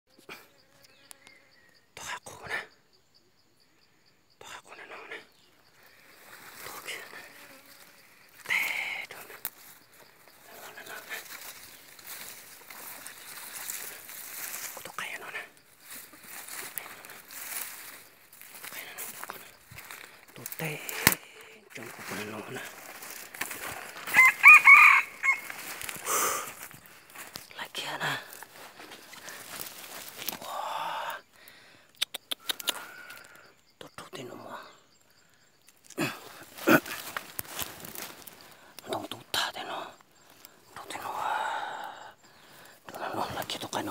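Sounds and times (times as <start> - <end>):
insects calling: 0.1 - 43.9
rustling in dry grass: 5.7 - 30.4, 35.7 - 38.9
rooster crowing: 24.0 - 26.2.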